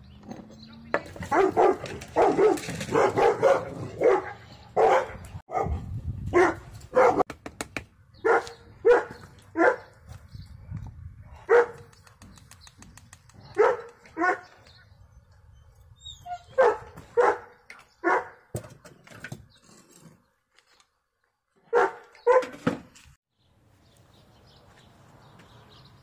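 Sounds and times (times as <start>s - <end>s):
dogs barking: 1.2s - 7.3s, 8.2s - 10.0s, 11.4s - 11.9s, 13.4s - 14.6s, 16.2s - 18.5s, 21.6s - 22.6s.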